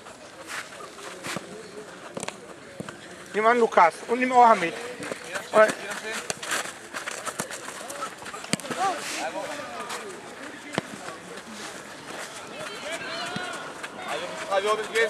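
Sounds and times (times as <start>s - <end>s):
distant shouts of children and adults: 12.4s - 14.9s.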